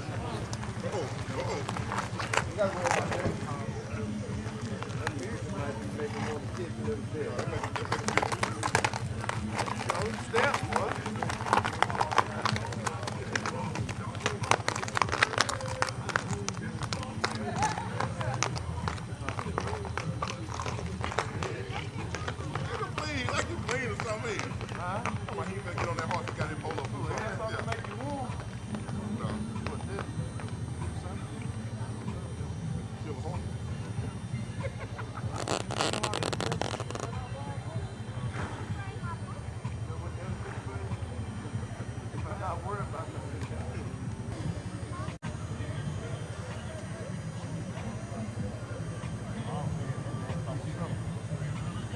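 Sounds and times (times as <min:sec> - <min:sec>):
hooves clopping on dirt: 0:00.0 - 0:30.6
people talking: 0:00.0 - 0:51.9.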